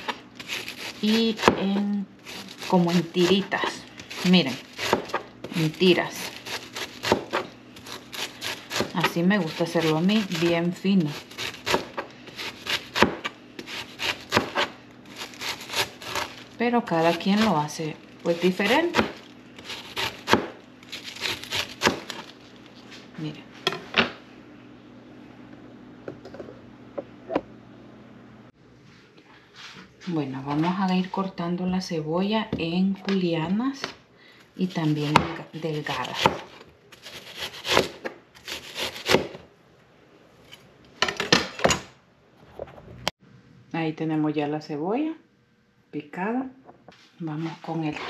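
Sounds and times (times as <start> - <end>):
knife slicing cabbage: 0.0 - 22.4, 34.6 - 39.4.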